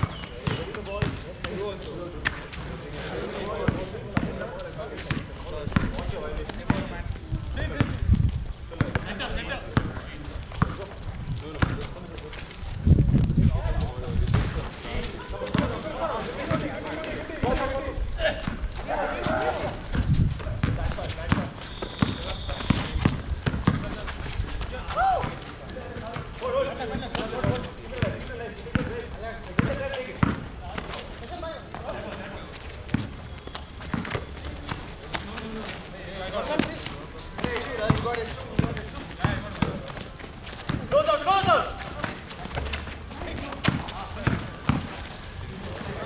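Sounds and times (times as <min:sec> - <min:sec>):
basketball bouncing on concrete: 0:00.0 - 0:01.6, 0:03.6 - 0:07.0, 0:07.7 - 0:08.1, 0:08.7 - 0:12.0, 0:14.2 - 0:14.7, 0:15.4 - 0:16.7, 0:18.3 - 0:24.1, 0:27.1 - 0:31.0, 0:32.9 - 0:35.6, 0:37.4 - 0:45.0
players calling out: 0:15.0 - 0:20.0.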